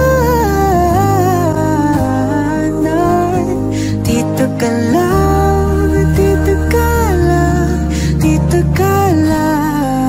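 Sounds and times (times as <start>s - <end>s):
chill pop song: 0.0s - 10.0s
sliding vocal melody: 0.0s - 10.0s
sustained bass notes: 0.0s - 10.0s.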